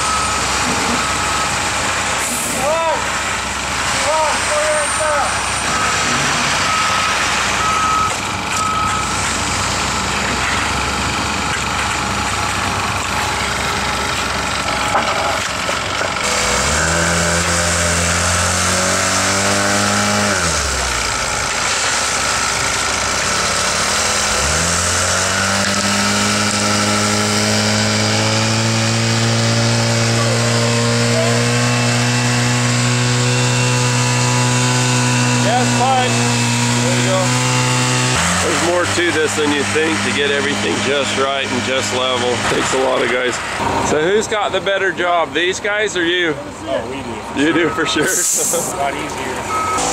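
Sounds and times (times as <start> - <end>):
general machinery noise: 0.0 - 49.9
small gasoline engine running: 15.6 - 42.8.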